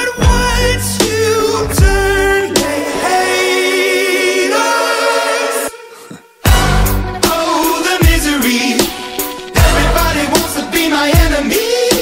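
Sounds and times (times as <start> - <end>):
sung vocal harmonies: 0.0 - 12.0.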